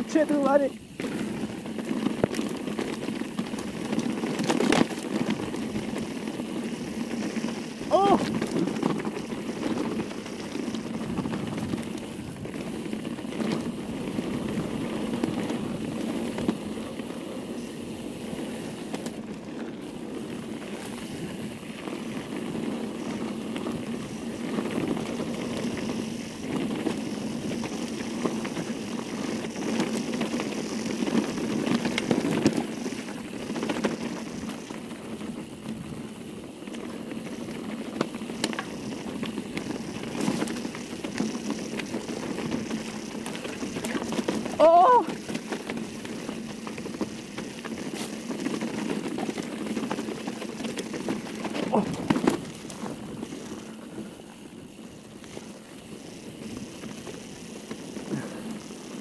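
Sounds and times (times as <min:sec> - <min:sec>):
bike clicks and rattles: 0:00.0 - 0:59.0
bike tyres rumbling on dirt: 0:00.0 - 0:59.0.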